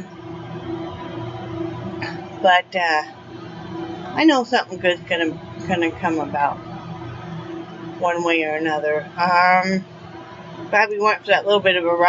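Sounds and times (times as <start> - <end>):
steady hum: 0.0 - 12.0.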